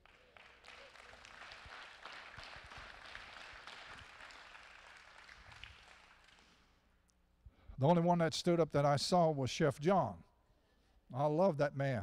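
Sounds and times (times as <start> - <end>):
congregation applauding: 0.0 - 6.6.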